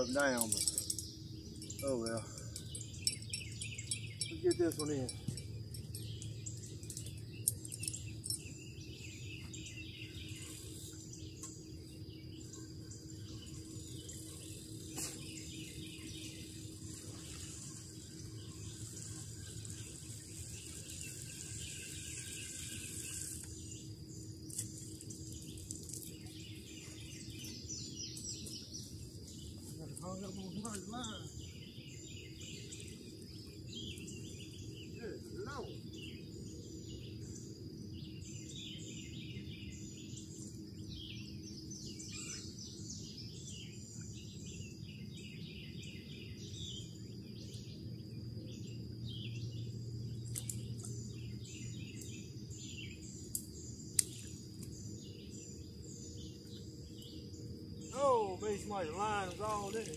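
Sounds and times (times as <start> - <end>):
low background hum: 0.0 - 59.9
songbirds chirping: 0.0 - 59.9.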